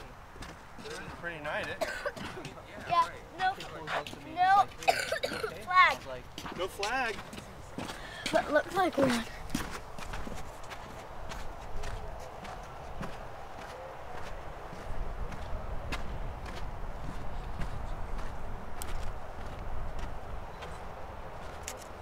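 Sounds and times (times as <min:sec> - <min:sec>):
footsteps on wooden boardwalk: 0:00.0 - 0:22.0
low wind rumble: 0:09.2 - 0:22.0.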